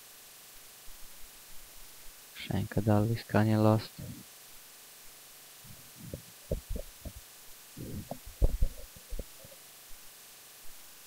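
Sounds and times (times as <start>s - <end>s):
dull low thumps: 5.7s - 7.2s, 7.8s - 9.5s.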